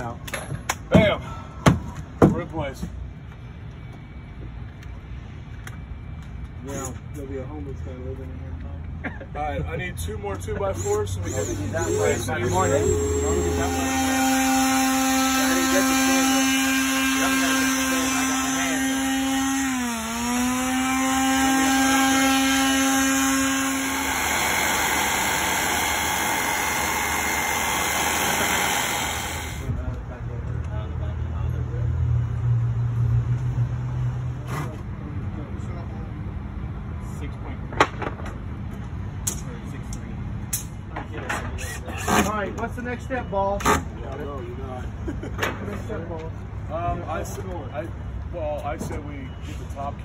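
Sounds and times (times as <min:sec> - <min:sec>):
power tool motor whining: 0:10.6 - 0:29.7.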